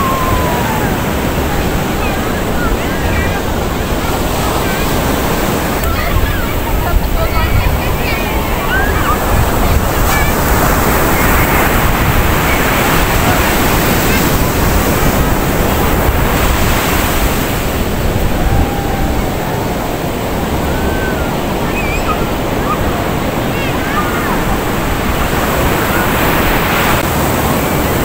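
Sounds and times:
ocean surf breaking on beach: 0.0s - 28.0s.

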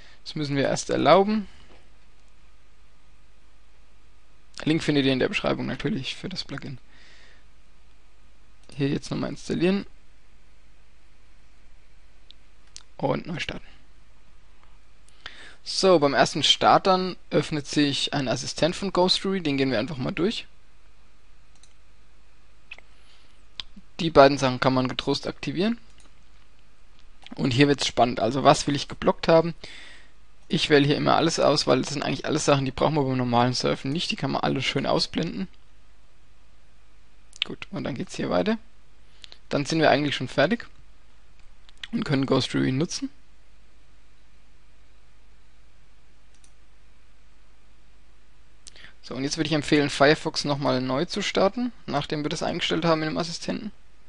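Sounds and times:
low steady hum: 0.0s - 54.0s
steady hiss: 0.0s - 54.0s
computer mouse click: 21.5s - 21.8s, 46.3s - 46.6s.

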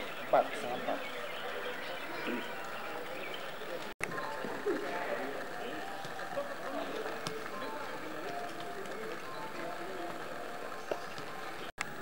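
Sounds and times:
distant people talking: 0.0s - 11.7s.

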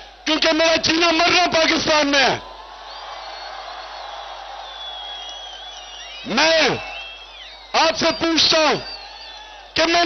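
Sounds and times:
rally crowd noise: 0.0s - 10.0s.

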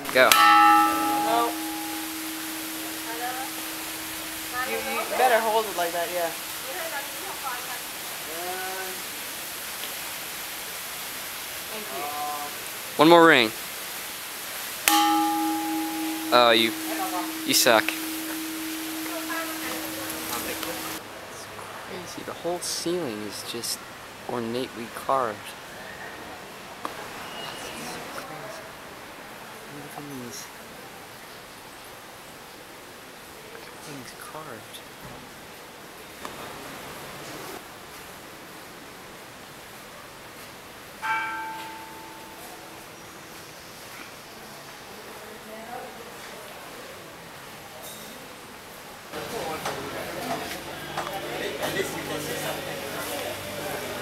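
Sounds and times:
metal temple bell ringing: 0.0s - 6.1s, 14.9s - 21.0s, 41.0s - 42.9s
faint room hiss: 0.0s - 54.0s.

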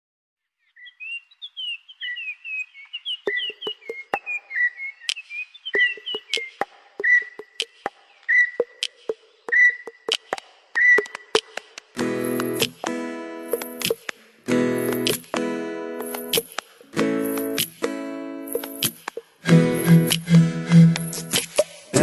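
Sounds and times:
bird chirps and whistled calls: 0.6s - 11.5s
rhythmic sharp clicks: 6.0s - 8.0s, 8.6s - 22.0s.

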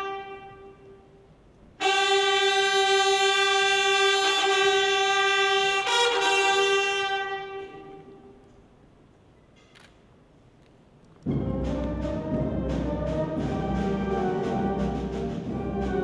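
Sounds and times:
brass fanfare: 0.0s - 1.0s, 1.8s - 8.1s, 11.3s - 16.0s.

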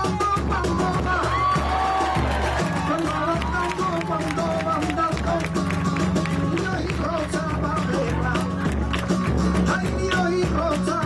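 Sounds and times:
sharp percussive taps: 3.7s - 11.0s.

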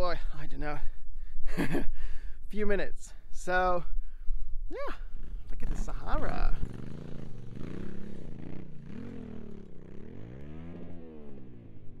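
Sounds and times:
motorcycle engine revving: 5.0s - 12.0s.

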